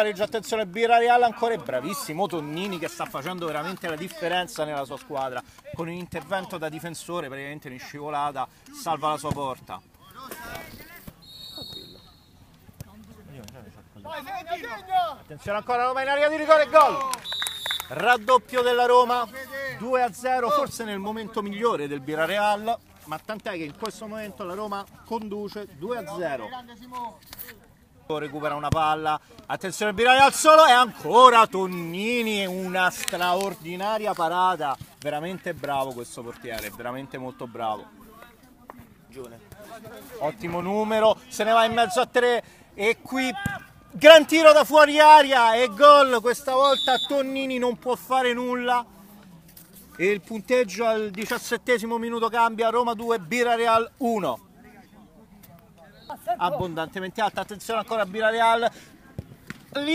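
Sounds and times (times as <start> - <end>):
high whistle: 11.2 - 12.4, 17.2 - 18.0, 46.6 - 47.2.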